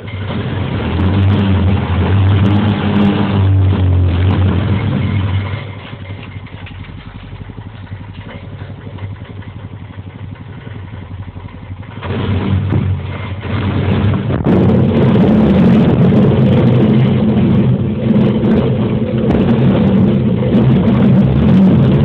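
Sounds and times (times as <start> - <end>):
atv engine running: 0.0 - 22.0.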